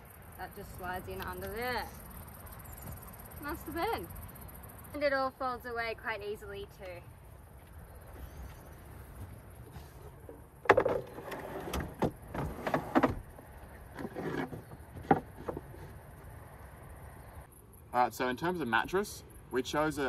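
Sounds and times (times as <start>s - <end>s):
wooden knocks and thumps: 9.7s - 16.0s.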